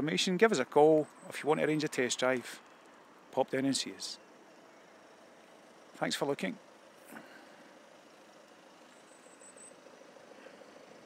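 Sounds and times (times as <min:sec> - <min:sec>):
faint engine hum: 0:00.0 - 0:11.0.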